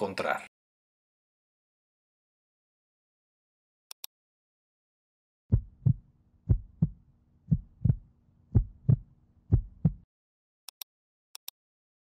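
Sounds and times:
heartbeat: 5.5s - 10.1s.

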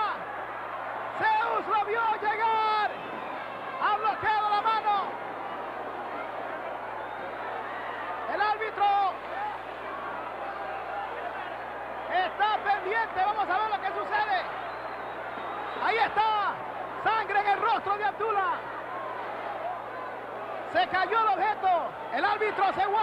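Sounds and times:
crowd noise: 0.0s - 23.0s
spectators yelling: 0.0s - 23.0s.

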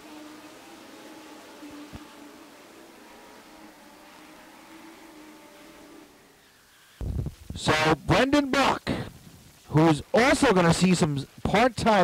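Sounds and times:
faint hum of race car engines: 0.0s - 7.0s.

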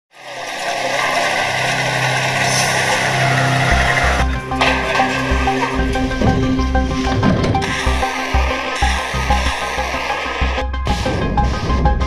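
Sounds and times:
dense rushing engine-like noise: 0.2s - 5.8s.

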